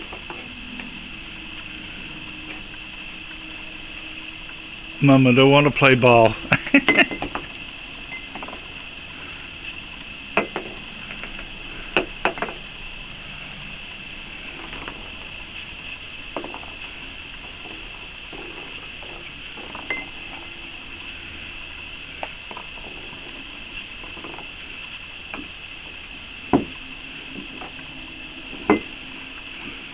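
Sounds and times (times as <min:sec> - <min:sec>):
high-pitched drone: 0:00.0 - 0:29.9.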